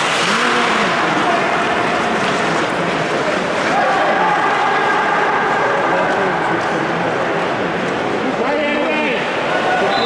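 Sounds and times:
ice game noise: 0.0s - 10.0s.

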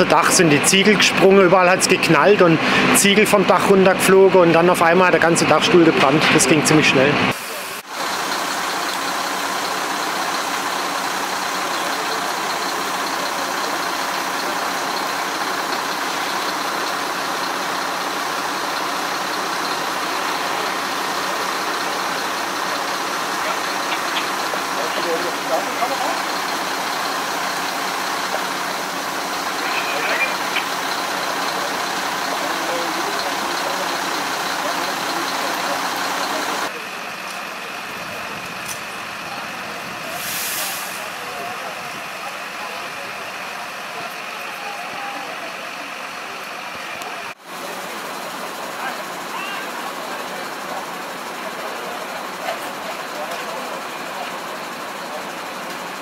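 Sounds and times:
fire trucks idling: 0.0s - 56.0s
faint voices: 10.0s - 56.0s.

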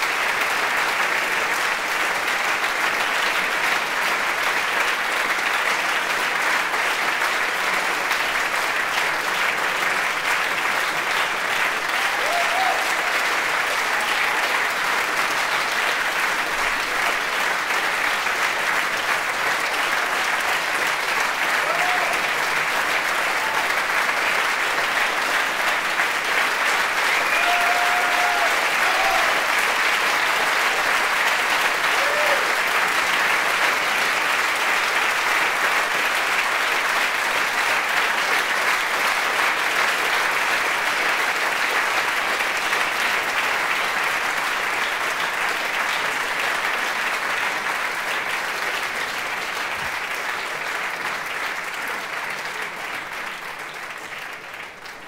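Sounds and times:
audience applauding: 0.0s - 55.0s
crowd calling out: 27.1s - 29.5s.

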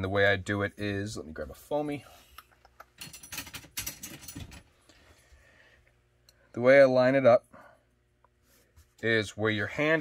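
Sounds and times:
small hard parts clicking and rattling: 2.6s - 4.7s.

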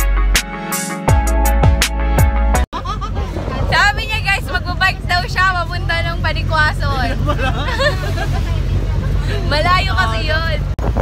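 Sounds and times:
road noise: 2.3s - 11.0s
passengers laughing and talking: 2.7s - 10.6s
vehicle engine drone: 2.8s - 11.0s.

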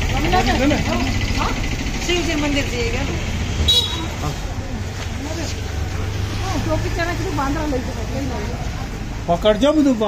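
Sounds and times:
traffic rumble: 0.0s - 10.0s
high-pitched horn toot: 3.7s - 4.2s.

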